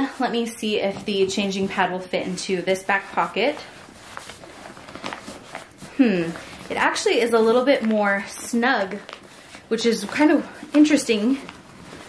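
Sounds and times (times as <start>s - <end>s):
fabric rustling: 0.0s - 12.0s
soft scuffs: 2.9s - 6.9s.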